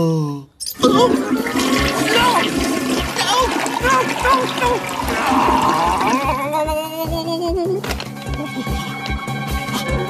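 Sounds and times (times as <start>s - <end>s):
water rushing with gurgling bubbles: 0.8s - 6.4s.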